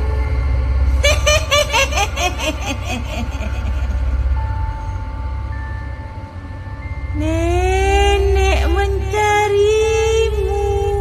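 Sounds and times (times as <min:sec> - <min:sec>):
ghostly voice wailing: 0:00.0 - 0:04.8
steady high tone: 0:00.0 - 0:10.9
low rumbling drone: 0:00.0 - 0:11.0
woman cackling laugh: 0:01.0 - 0:04.2.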